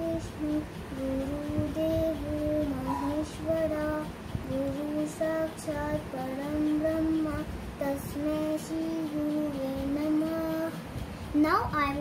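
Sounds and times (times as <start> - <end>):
girl singing unaccompanied: 0.0 - 12.0.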